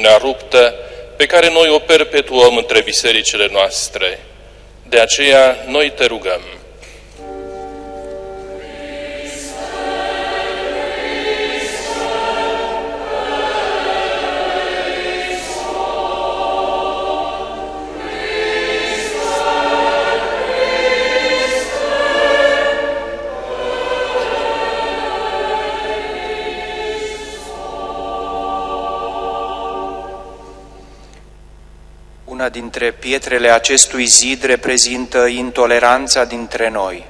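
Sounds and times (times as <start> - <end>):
choir singing: 7.2 - 31.0.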